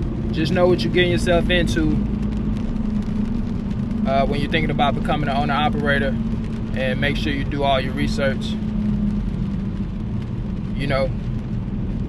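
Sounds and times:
car road and engine rumble: 0.0s - 12.0s
droning hum: 0.0s - 12.0s.

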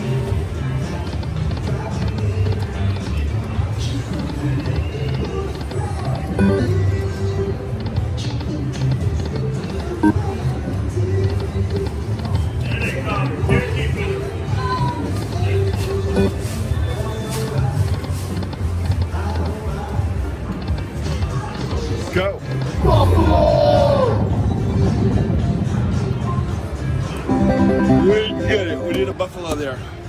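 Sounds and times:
slot machine music and effects: 6.4s - 6.8s, 16.2s - 16.4s, 27.3s - 29.6s.

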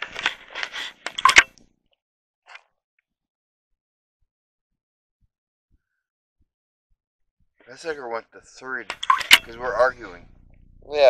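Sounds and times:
sharp clicks: 0.0s - 1.6s, 8.8s - 10.7s.

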